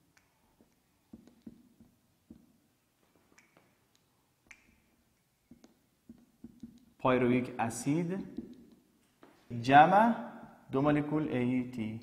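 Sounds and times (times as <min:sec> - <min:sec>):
marker squeaking on whiteboard: 0:00.2 - 0:02.7, 0:03.3 - 0:07.0, 0:07.8 - 0:09.0.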